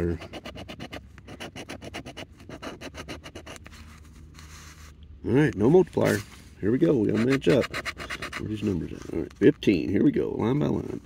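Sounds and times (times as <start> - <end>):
coin scratching lottery ticket: 0.0 - 3.6, 7.0 - 9.0.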